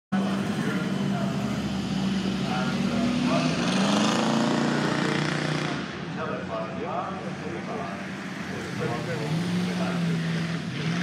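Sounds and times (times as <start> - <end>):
car engine driving: 0.1 - 11.0.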